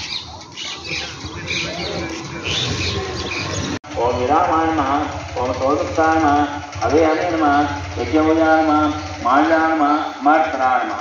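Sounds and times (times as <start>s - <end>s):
birds chirping and squawking: 0.0s - 3.8s.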